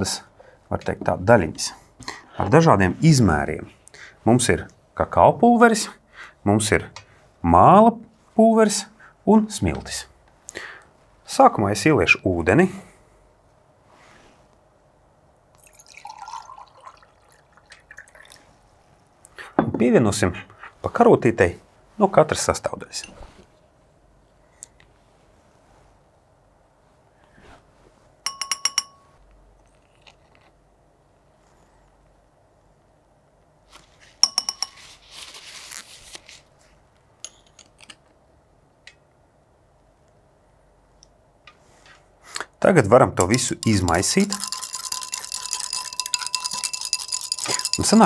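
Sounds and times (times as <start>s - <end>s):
spoon clinking on glass beaker: 28.3s - 29.2s, 34.2s - 34.8s, 43.2s - 48.0s.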